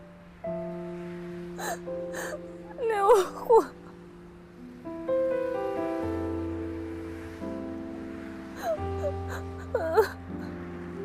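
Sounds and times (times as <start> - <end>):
soft background music: 0.0 - 11.0
woman sobbing and whimpering: 1.6 - 4.0, 8.6 - 10.6.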